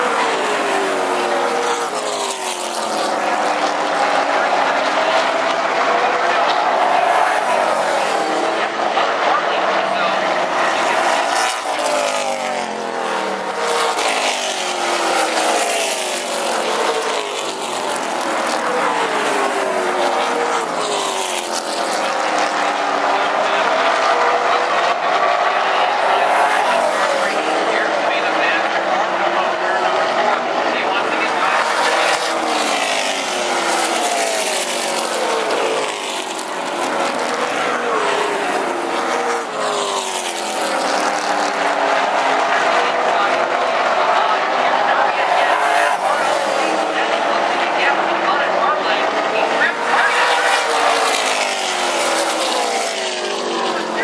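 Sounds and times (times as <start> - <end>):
stock car engines racing by: 0.0 - 54.0.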